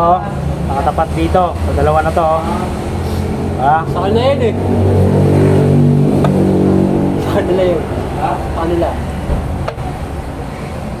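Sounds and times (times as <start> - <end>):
engine running: 0.3 - 11.0.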